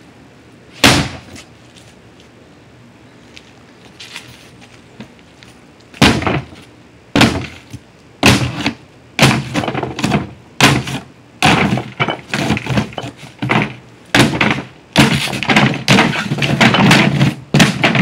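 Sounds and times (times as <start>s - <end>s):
stick striking wooden box: 8.2s - 18.0s
wood cracking and splintering: 8.2s - 18.0s.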